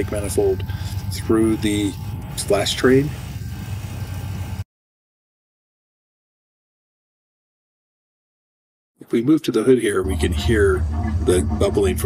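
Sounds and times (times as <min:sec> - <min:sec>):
vacuum pump humming: 0:00.0 - 0:04.6.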